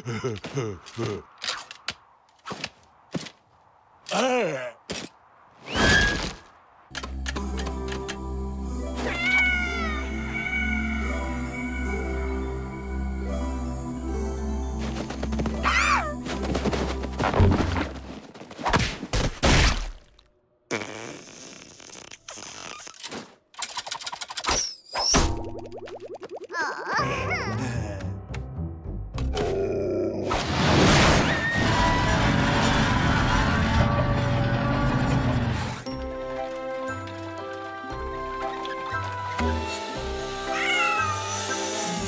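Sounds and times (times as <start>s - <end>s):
background music: 6.9s - 18.1s, 26.9s - 30.1s, 33.8s - 42.0s
cartoon cat call: 40.5s - 41.2s.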